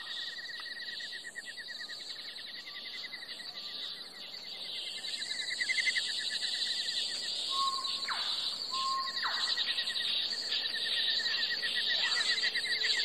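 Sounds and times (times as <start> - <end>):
insects trilling: 0.0 - 13.0
whistled bird calls: 7.5 - 10.0.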